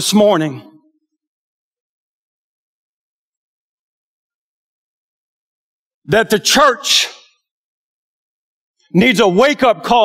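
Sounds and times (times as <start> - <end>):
man speaking: 0.0 - 0.8, 6.1 - 7.3, 9.0 - 10.0.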